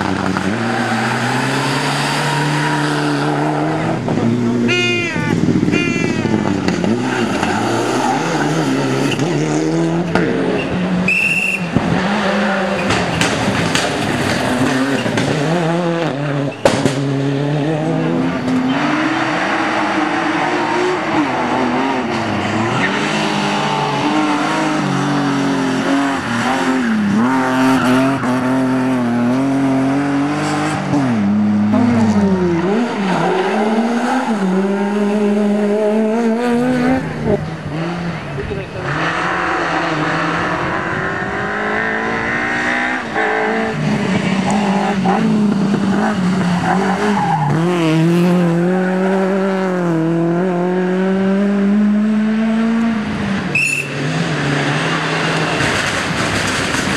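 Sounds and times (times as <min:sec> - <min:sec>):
rally car engines revving: 0:00.0 - 0:56.9.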